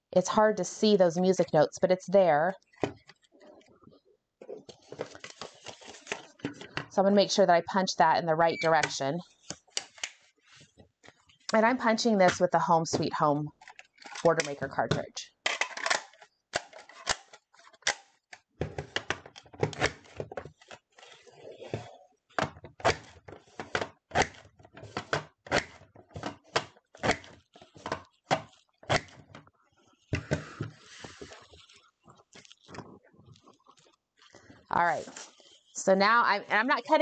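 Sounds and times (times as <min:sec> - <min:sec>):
paper sliding rustle: 0:04.7 - 0:06.5, 0:30.4 - 0:31.8.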